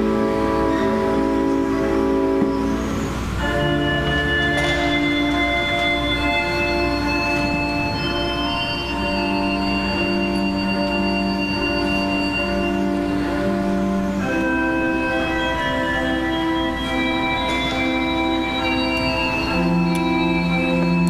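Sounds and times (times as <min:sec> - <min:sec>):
church organ chords: 0:00.0 - 0:21.0.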